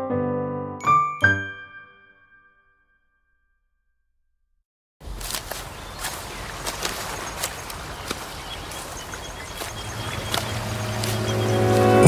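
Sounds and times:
steady outdoor hiss: 0:05.0 - 0:11.9
footsteps crunching dry leaves: 0:05.0 - 0:12.0.

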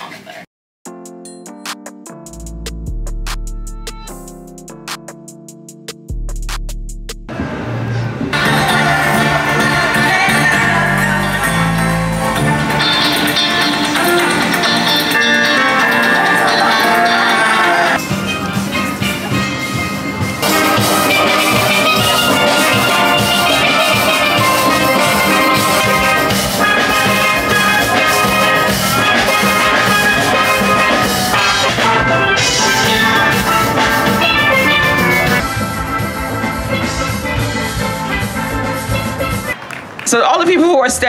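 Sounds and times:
drum beat: 0:00.9 - 0:07.3, 0:20.3 - 0:39.6
steelpans playing a tune: 0:08.4 - 0:39.6.

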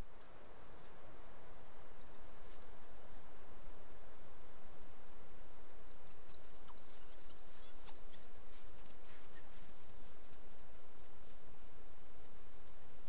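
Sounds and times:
small bird chirping: 0:00.0 - 0:02.6, 0:05.8 - 0:09.6, 0:10.3 - 0:10.9.

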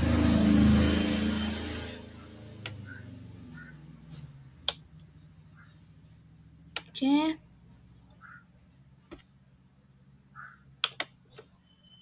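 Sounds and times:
low hum: 0:00.0 - 0:10.5.

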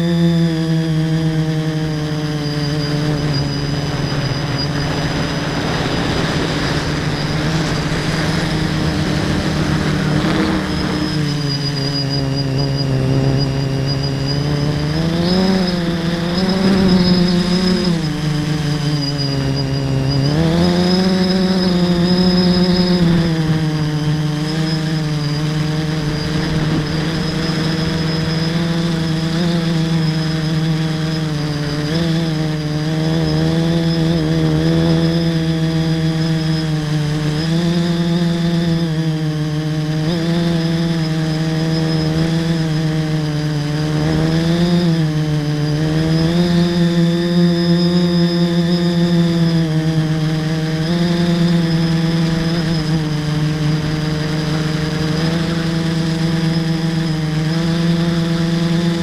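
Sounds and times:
drone motors whining: 0:00.0 - 0:59.0
rushing air: 0:03.0 - 0:12.4.

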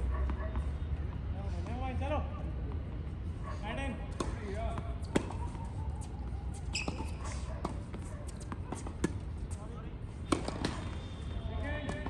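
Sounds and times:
tennis ball hitting racket and court: 0:04.1 - 0:09.5, 0:10.2 - 0:11.0.

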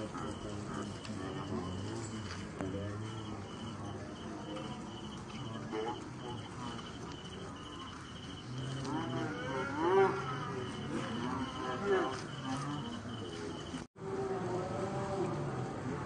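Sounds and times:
crickets chirping: 0:00.0 - 0:13.9
drawn-out rising and falling call: 0:00.0 - 0:14.4.

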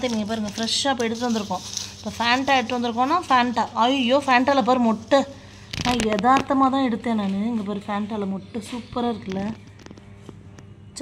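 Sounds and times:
woman speaking: 0:00.0 - 0:09.7.

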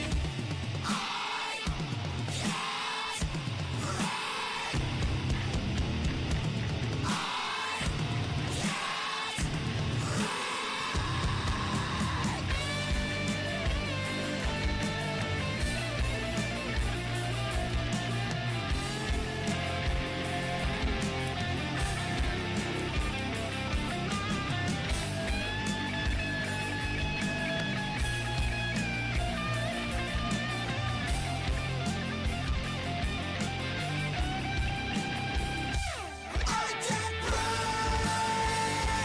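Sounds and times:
metal song with guitars and drums: 0:00.0 - 0:39.0.

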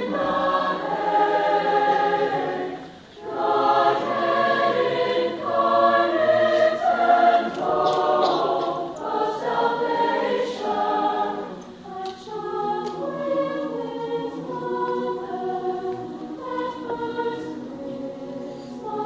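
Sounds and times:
choir singing sustained chords: 0:00.0 - 0:19.0.

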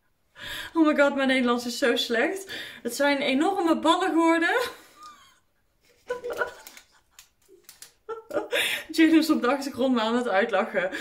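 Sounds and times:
person laughing: 0:06.0 - 0:08.8.

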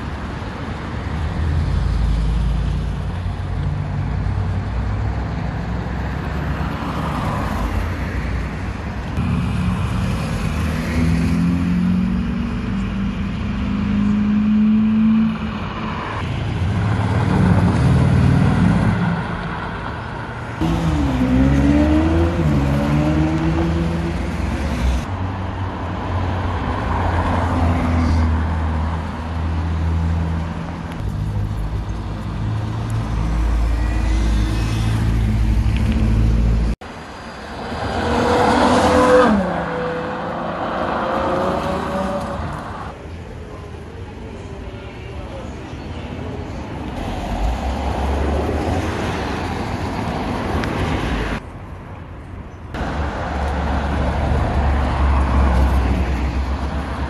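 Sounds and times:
sports car engines revving: 0:20.6 - 0:25.1.

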